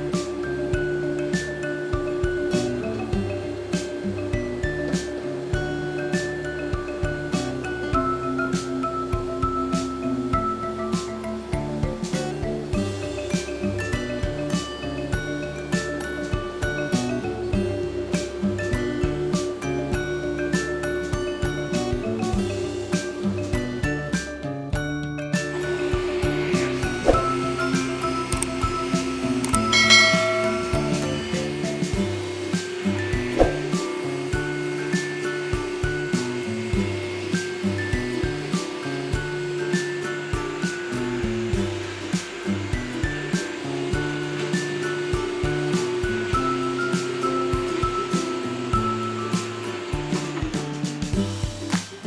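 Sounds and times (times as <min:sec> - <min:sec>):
floor scrubber humming: 0:00.0 - 0:24.5, 0:25.3 - 0:52.0
background music with steady beat: 0:00.0 - 0:52.0.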